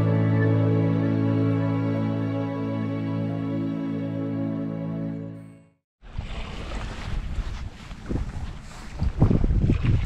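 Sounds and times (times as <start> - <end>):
choppy water washing: 6.0 - 10.0
gusty wind buffeting microphone: 6.1 - 10.0.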